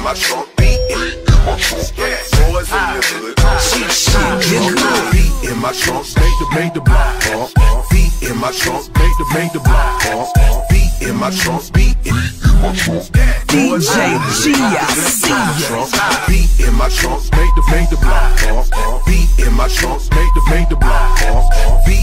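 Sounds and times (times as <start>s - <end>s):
rapping over a heavy beat: 0.0s - 22.0s.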